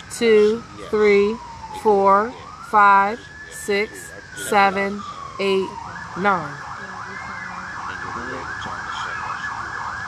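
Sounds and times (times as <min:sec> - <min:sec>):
siren yelping: 0:00.0 - 0:10.0.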